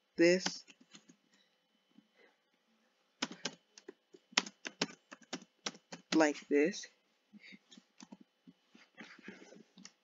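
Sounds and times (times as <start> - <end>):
computer keyboard typing: 0.3 - 1.2, 3.2 - 6.4, 8.0 - 8.2.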